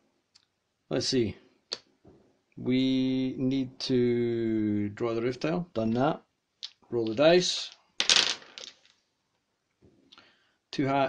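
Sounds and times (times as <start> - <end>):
dice clattering on wooden table: 8.0 - 9.0.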